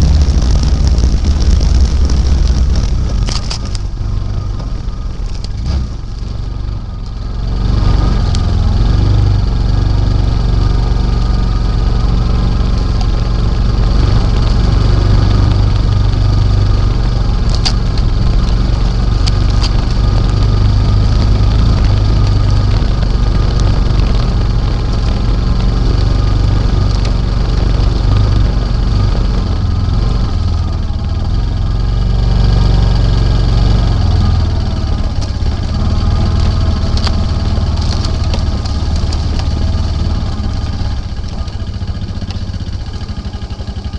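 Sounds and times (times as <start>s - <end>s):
atv engine running: 0.0s - 43.9s.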